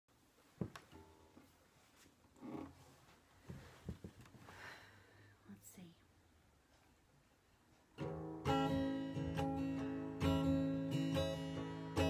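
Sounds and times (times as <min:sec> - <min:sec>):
person whispering: 0:05.4 - 0:06.1.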